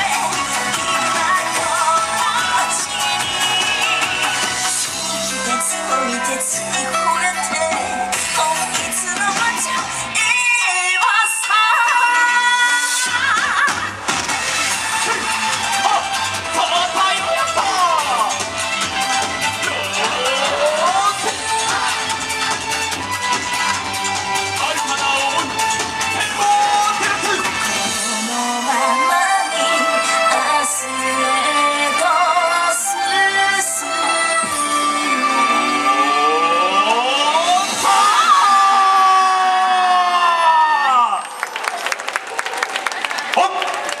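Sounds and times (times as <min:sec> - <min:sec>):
spectators clapping and cheering: 0:00.0 - 0:04.8, 0:37.8 - 0:44.0
dance music over loudspeaker: 0:00.0 - 0:41.2.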